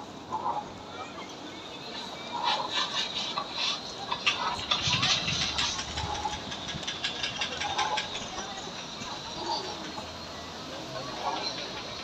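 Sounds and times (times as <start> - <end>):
indistinct voices of passers-by: 0.0 - 12.0.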